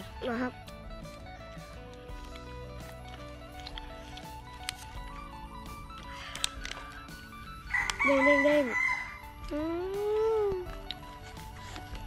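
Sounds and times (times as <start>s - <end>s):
faint background music: 0.0s - 12.0s
rooster crowing: 7.7s - 9.3s.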